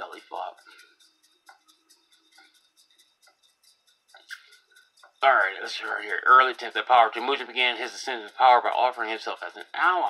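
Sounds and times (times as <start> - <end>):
mouse scroll wheel ticking: 0.0 - 10.0.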